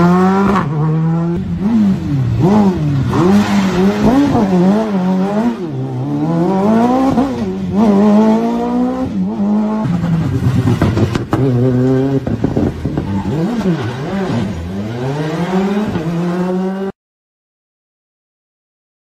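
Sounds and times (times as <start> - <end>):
rally car engines revving: 0.0 - 17.0.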